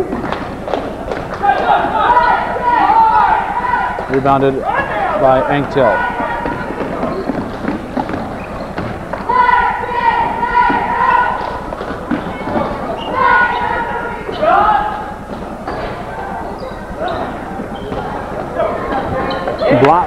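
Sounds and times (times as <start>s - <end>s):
voices calling out: 0.0s - 20.0s
basketball bouncing: 5.6s - 20.0s.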